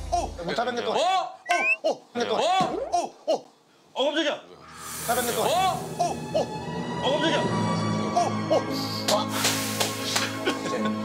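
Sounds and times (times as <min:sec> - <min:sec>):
hiss: 0:04.8 - 0:05.9, 0:08.9 - 0:10.4.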